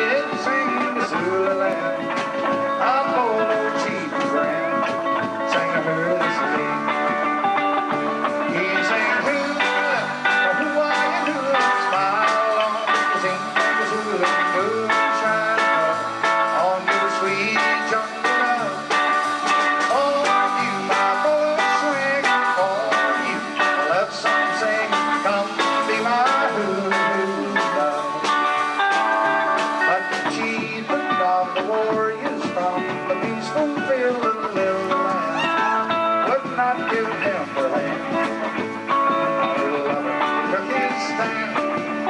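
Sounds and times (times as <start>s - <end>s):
bass guitar: 0.0s - 42.0s
electric guitars: 0.0s - 42.0s
steady drum beat: 0.0s - 42.0s.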